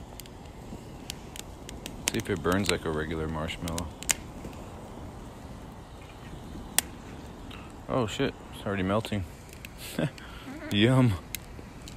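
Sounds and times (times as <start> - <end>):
fire crackling pops: 0.0 - 11.9
wood fire burning: 0.0 - 11.9.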